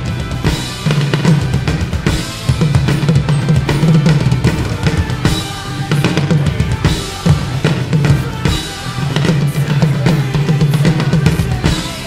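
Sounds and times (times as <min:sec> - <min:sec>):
recorded backing track: 0:00.0 - 0:12.0
rock drum kit beat: 0:00.0 - 0:12.0.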